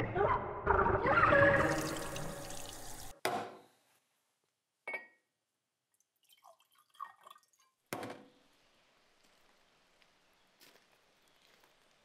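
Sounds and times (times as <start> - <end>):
steady outdoor hiss: 8.3 - 12.0.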